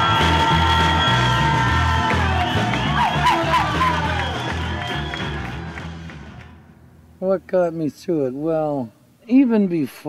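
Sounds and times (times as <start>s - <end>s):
band music with pulsing bass: 0.0s - 6.4s
crowd cheering and whooping: 0.0s - 6.4s.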